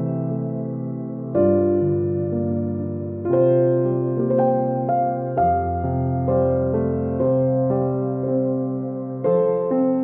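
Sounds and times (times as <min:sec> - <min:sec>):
slow worship music on piano: 0:00.0 - 0:10.0.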